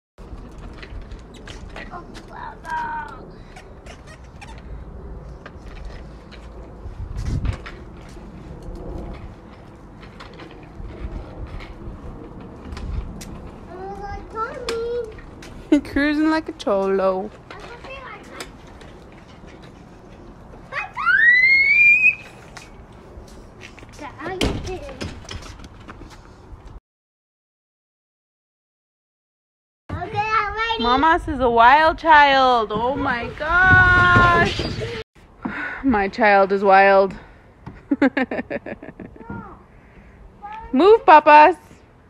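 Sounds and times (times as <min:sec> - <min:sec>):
small bike rolling on concrete: 0:00.2 - 0:26.8, 0:32.3 - 0:37.3
child squealing: 0:20.8 - 0:22.3.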